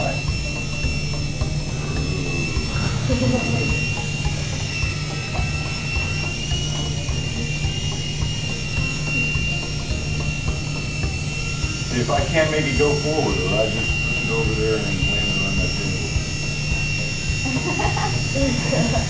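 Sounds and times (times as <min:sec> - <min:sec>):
toy helicopter rotor whine: 0:00.0 - 0:19.0.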